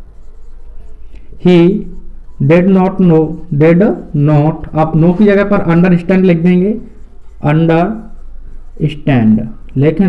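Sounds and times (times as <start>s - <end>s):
marker scratching on whiteboard: 0.0s - 10.0s
person speaking: 0.2s - 10.0s.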